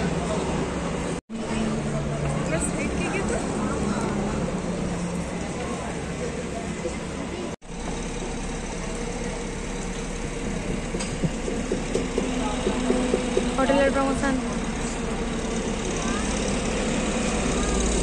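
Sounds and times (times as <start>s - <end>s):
vehicle engines passing: 0.0s - 18.0s
people talking: 1.4s - 7.6s, 8.2s - 18.0s.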